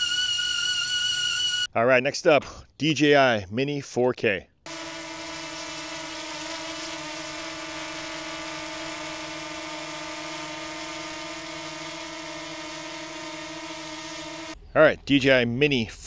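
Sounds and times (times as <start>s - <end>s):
drone propellers whining: 0.0s - 1.7s, 4.7s - 14.6s.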